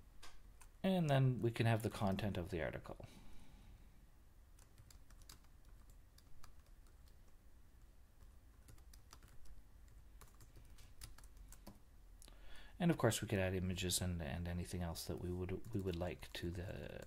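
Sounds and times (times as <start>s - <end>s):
typing on computer keyboard: 4.6s - 7.4s, 8.2s - 11.8s.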